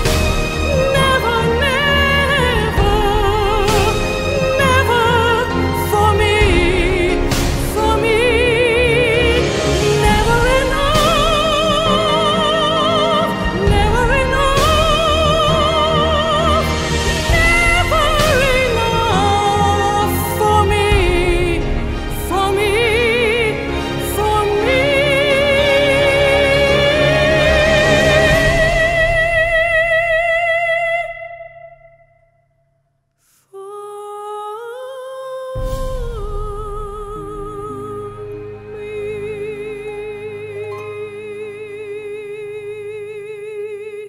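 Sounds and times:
backing music: 0.0s - 31.2s
woman singing opera: 0.0s - 32.2s, 33.4s - 44.0s.

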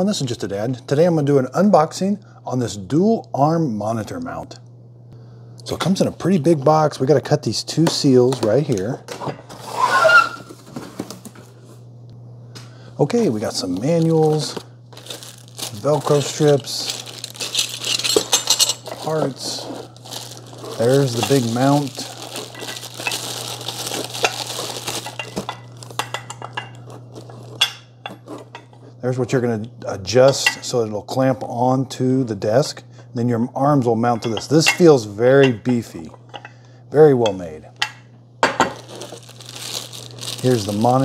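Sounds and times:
steady low hum: 0.0s - 41.0s
plastic wrapping crinkling: 13.4s - 27.6s, 38.7s - 41.0s.

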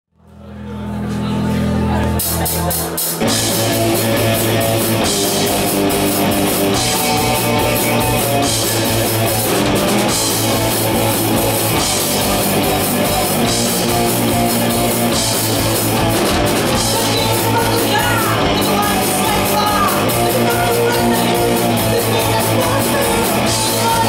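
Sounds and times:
punk rock band playing live: 1.5s - 24.0s.

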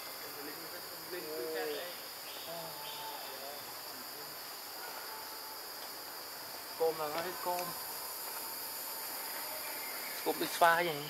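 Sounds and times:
forest insects droning: 0.0s - 11.0s.

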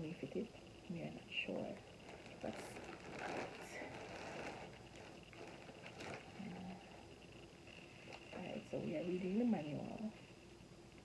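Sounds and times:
paper and plastic rustling: 1.5s - 7.0s, 7.7s - 9.4s.

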